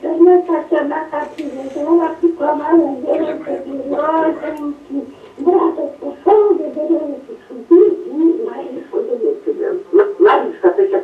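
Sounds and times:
old woman telling a tale: 0:00.0 - 0:11.0.

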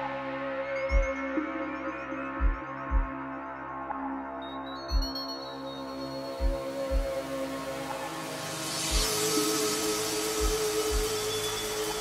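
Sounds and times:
deep kick drum thumps: 0:00.9 - 0:01.1, 0:02.4 - 0:03.1, 0:06.4 - 0:07.1
noise hiss: 0:06.6 - 0:12.0.

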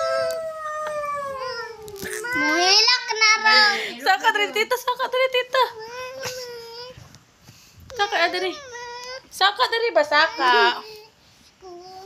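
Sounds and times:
high drawn-out vocal howl: 0:00.0 - 0:02.0.

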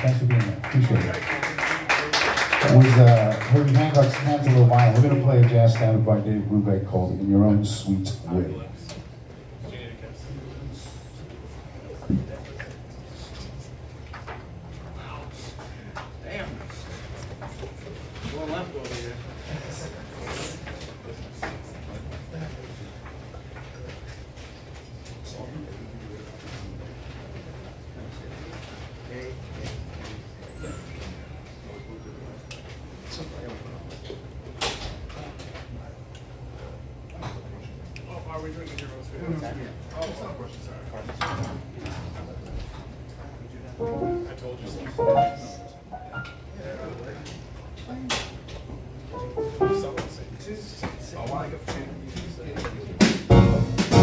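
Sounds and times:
background chatter: 0:08.4 - 0:34.4.

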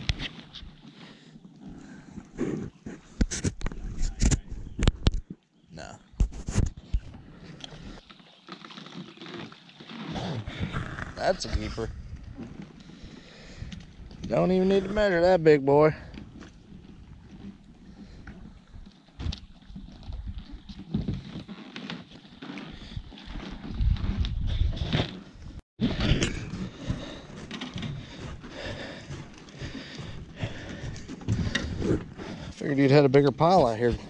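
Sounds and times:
wind buffeting microphone: 0:10.4 - 0:12.6, 0:22.8 - 0:25.1.

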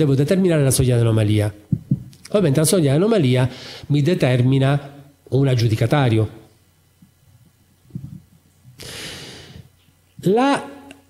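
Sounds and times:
man breathing in: 0:03.5 - 0:03.9, 0:08.8 - 0:09.7.

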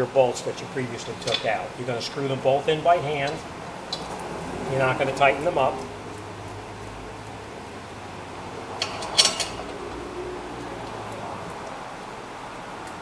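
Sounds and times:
shop low hum: 0:00.0 - 0:13.0.

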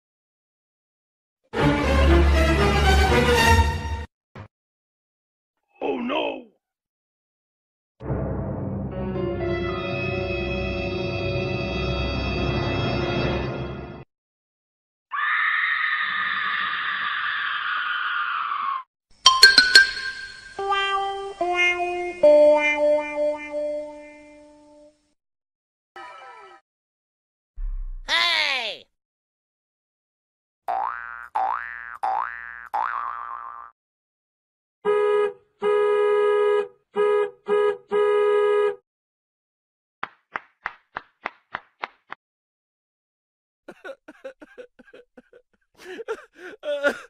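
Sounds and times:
long held scream: 0:15.1 - 0:18.9.

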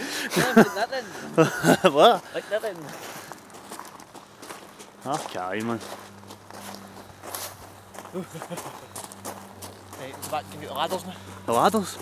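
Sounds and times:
footsteps on gravel: 0:01.5 - 0:12.0.

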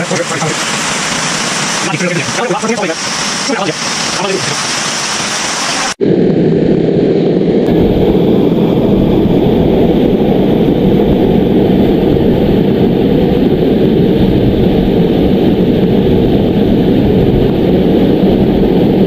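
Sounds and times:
loud rushing roar: 0:00.0 - 0:19.0.

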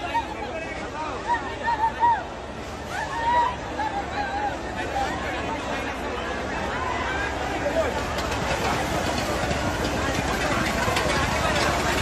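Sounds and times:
outdoor noise: 0:00.0 - 0:12.0
fire engine running: 0:02.3 - 0:12.0.

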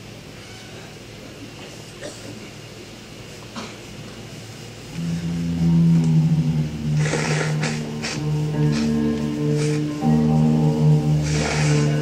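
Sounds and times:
tape hiss: 0:02.6 - 0:12.0
steady low held note: 0:04.8 - 0:12.0.

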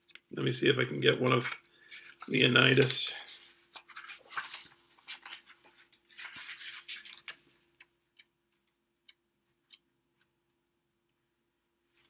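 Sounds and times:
paper rustling with clicks: 0:01.2 - 0:07.9.

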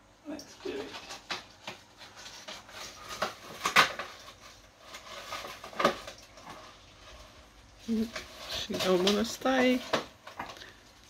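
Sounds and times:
artificial tree branches rustling: 0:00.5 - 0:11.0.

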